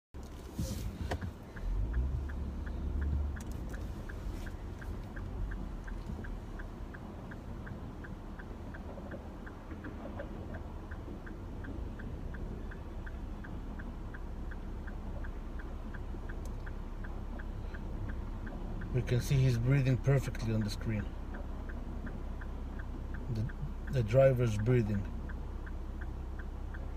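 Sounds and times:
engine and road rumble: 0.0s - 26.9s
turn signal ticking: 0.1s - 26.9s.

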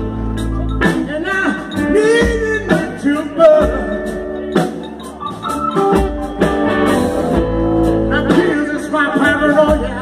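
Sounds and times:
live soul band playing: 0.0s - 10.0s.

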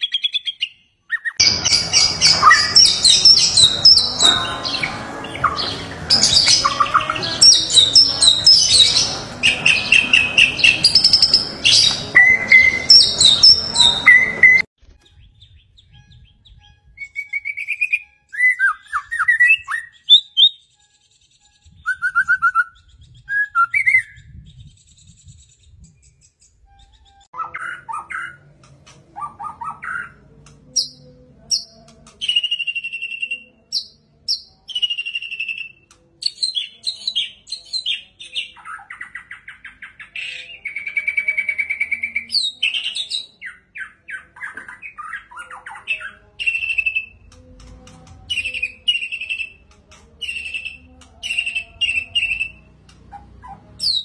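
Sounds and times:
songbird whistling and trilling: 0.0s - 28.4s, 30.8s - 47.3s, 48.3s - 52.7s, 53.4s - 54.0s.

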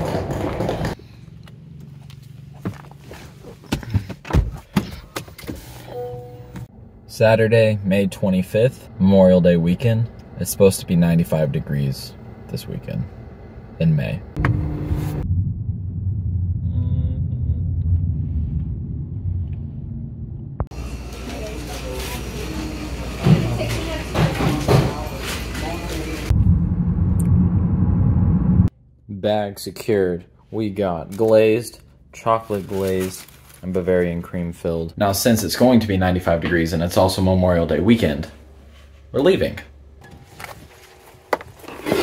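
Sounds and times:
car engine rumble: 0.0s - 4.7s, 6.6s - 20.8s, 26.2s - 28.9s
low hum: 5.8s - 22.0s, 26.0s - 30.5s.

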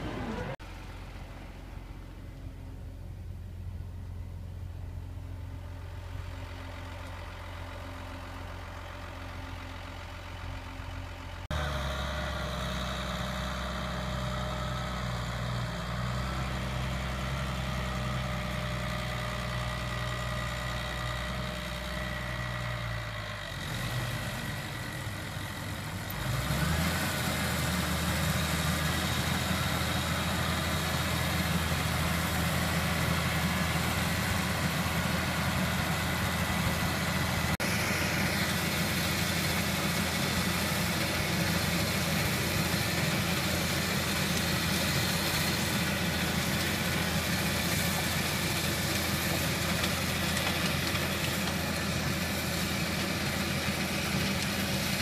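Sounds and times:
tractor engine idling and revving: 0.0s - 55.0s.

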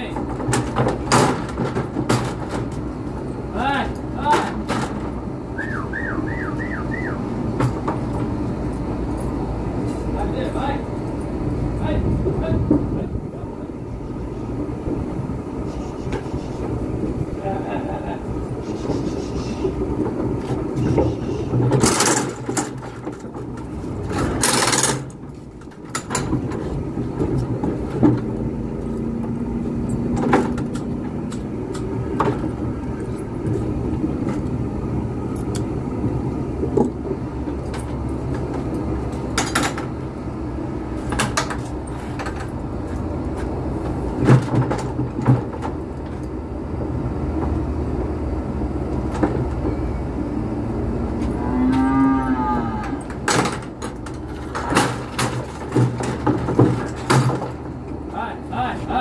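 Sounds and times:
gates and levers clanking: 0.0s - 46.4s, 48.8s - 59.0s
steady low rumble: 4.9s - 44.2s.

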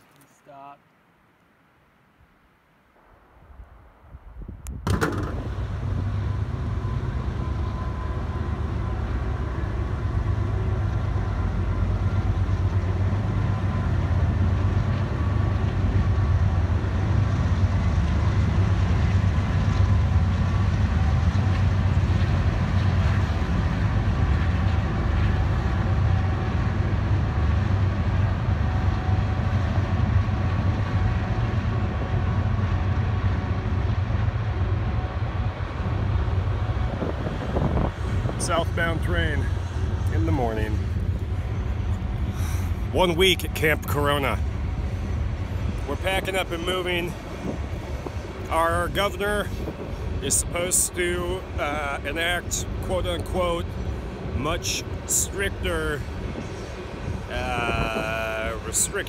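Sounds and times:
freight train rumbling past: 3.4s - 59.0s.

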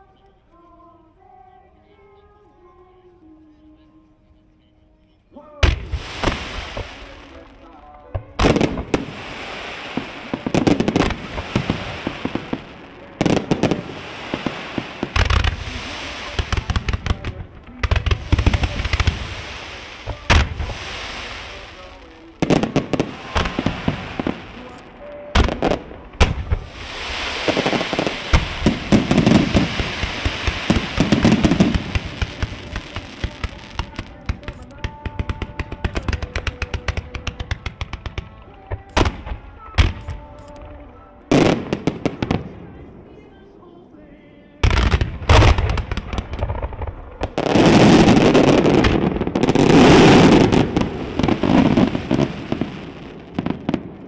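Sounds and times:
firework shells bursting: 5.6s - 42.4s.

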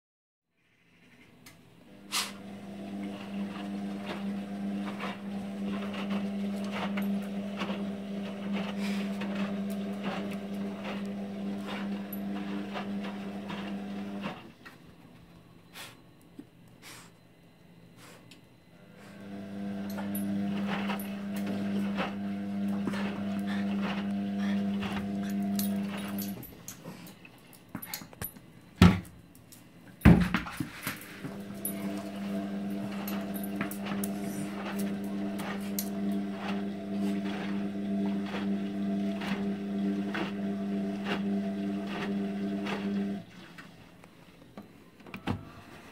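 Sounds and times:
washing machine hum: 1.3s - 45.9s.

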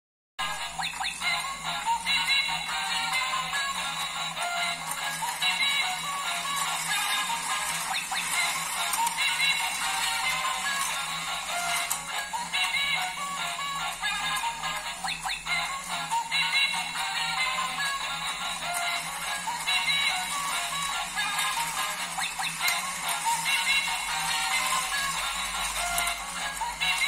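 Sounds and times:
toy beeping electronic melody: 0.4s - 27.0s.

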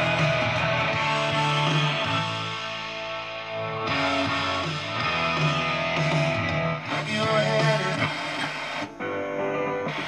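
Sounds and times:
dull radio station: 0.0s - 10.0s
guitar music from radio speaker: 0.0s - 10.0s.

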